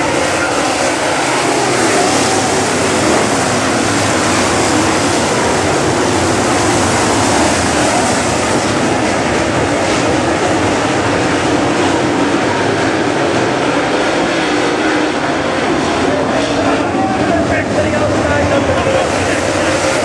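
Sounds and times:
race car engines droning: 0.0 - 20.0.

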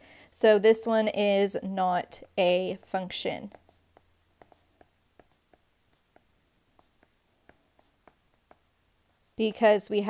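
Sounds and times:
stylus tapping on glass screen: 3.5 - 8.7.

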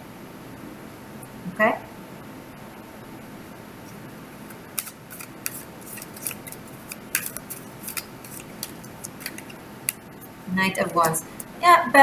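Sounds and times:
cards being shuffled: 4.5 - 11.6.

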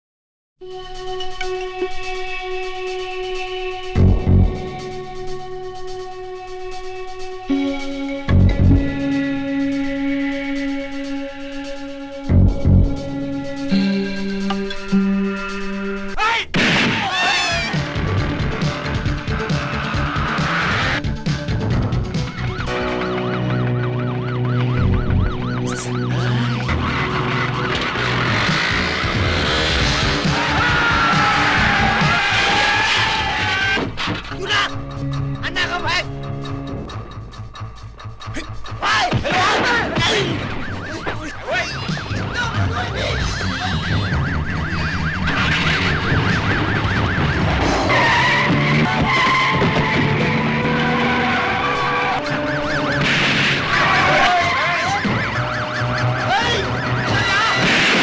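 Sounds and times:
low music drone: 0.6 - 16.1, 17.8 - 32.7
police siren yelping: 17.0 - 17.9, 21.9 - 33.8, 39.3 - 58.0.

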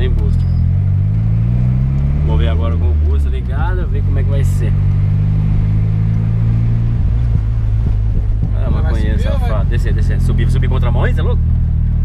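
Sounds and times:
car engine drone from inside: 0.0 - 12.0.

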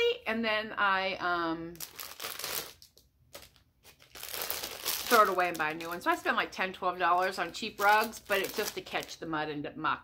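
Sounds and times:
plastic packaging crinkling: 1.7 - 9.2.

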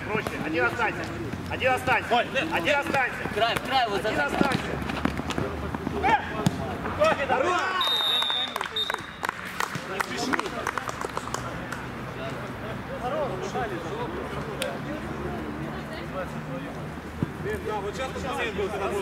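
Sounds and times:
football being kicked: 5.8 - 6.7
players shouting: 5.9 - 9.2
referee's whistle blast: 7.8 - 9.2.

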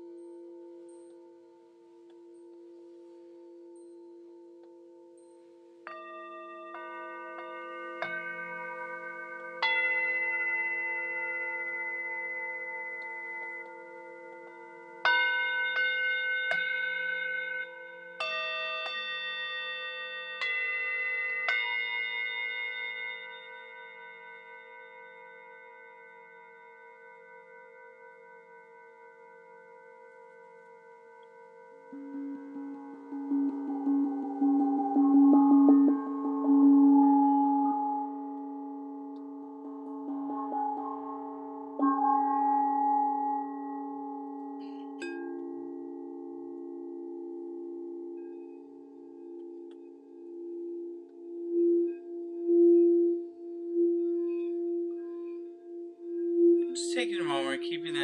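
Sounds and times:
low wavering bowl tone: 0.0 - 58.0
singing bowls ringing: 0.0 - 58.0.

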